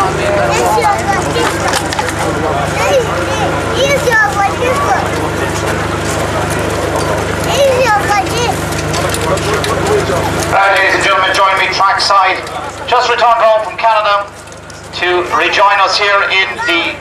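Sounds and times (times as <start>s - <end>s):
men talking: 0.0s - 17.0s
steady low hum: 0.0s - 17.0s
horse hooves clopping: 3.9s - 16.1s.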